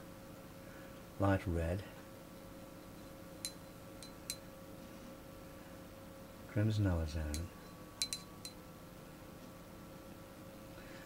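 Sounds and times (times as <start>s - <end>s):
faint steady hum: 0.0s - 11.0s
brush clinking against palette: 2.9s - 4.5s, 7.3s - 8.6s.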